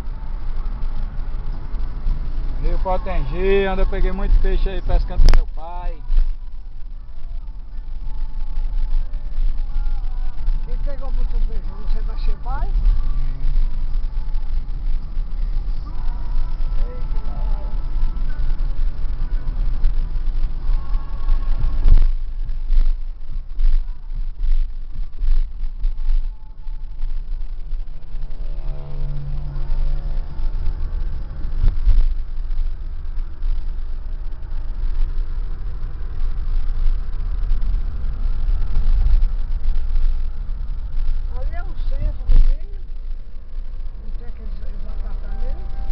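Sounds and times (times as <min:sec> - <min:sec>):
car tyres and engine rumble: 0:00.0 - 0:45.9
wind noise: 0:00.0 - 0:45.9.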